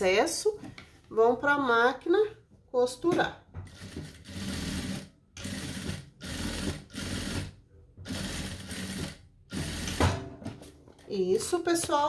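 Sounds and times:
industrial sewing machine stitching: 3.7s - 10.0s.

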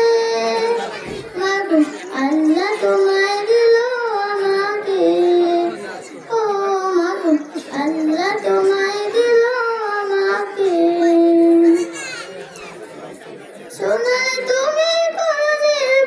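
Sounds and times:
person singing devotional song: 0.0s - 11.7s, 13.7s - 16.0s.

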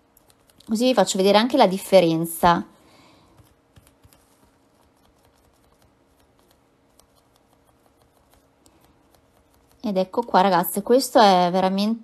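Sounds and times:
faint steady hum: 0.0s - 12.0s
woman speaking: 0.7s - 2.8s, 9.8s - 12.0s
sponge brush tapping nail: 3.3s - 10.0s.

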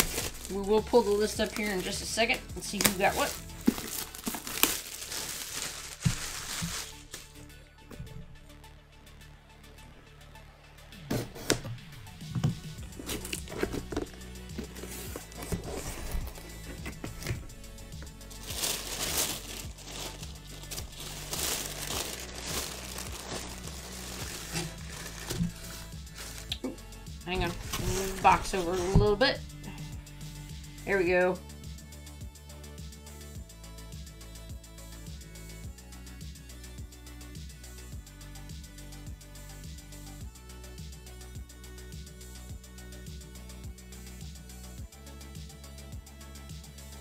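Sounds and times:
plastic packaging crinkling: 0.0s - 2.1s, 2.7s - 7.4s, 12.8s - 26.6s, 27.4s - 29.2s
background music: 0.0s - 47.0s.

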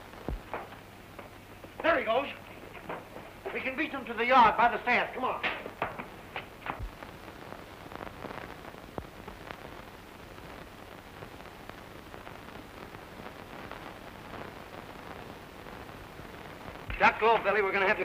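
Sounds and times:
film soundtrack hiss: 0.0s - 18.0s
faint knocks: 0.3s - 3.7s.

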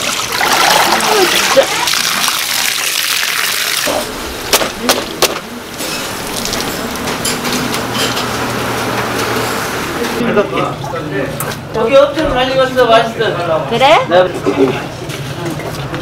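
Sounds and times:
water draining from colander: 0.0s - 4.1s
sharp knocks: 4.5s - 5.5s.

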